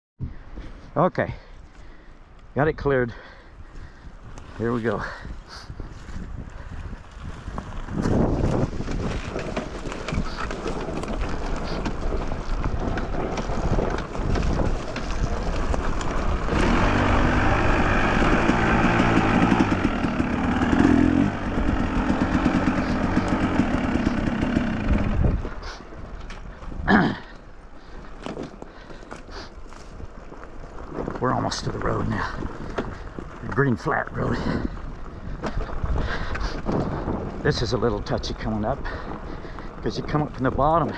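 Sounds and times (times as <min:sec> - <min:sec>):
dirt bike engine running: 0:04.6 - 0:40.9.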